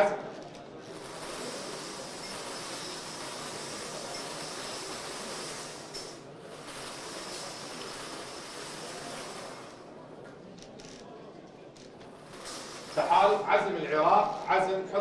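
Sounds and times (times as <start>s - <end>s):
steady background hiss: 12.1s - 15.0s.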